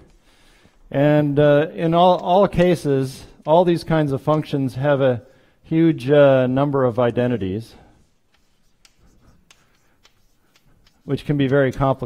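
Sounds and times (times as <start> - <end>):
chalk tapping and scratching: 7.0 - 12.0.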